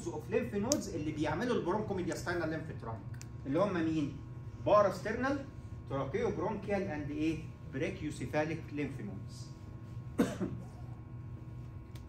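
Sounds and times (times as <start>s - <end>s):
low room hum: 0.0s - 12.0s
person coughing: 10.2s - 11.0s.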